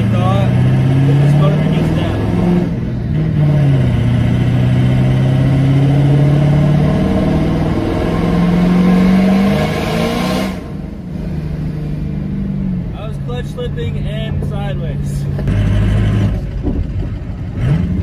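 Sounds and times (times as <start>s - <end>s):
diesel engine revving: 0.0s - 18.0s.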